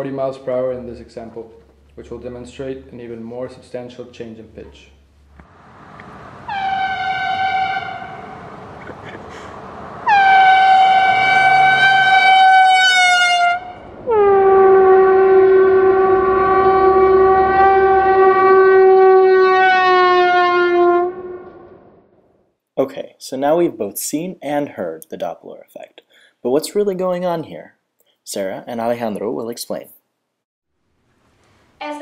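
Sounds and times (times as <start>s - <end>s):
air horn blasts: 6.5s - 8.4s, 10.0s - 21.8s.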